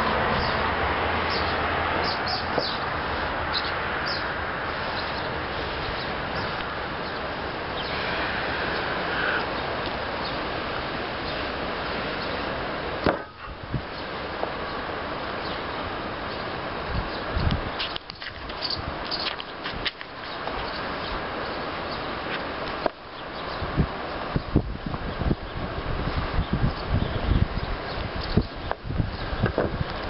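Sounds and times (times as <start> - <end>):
steady outdoor rush: 0.0 - 30.0.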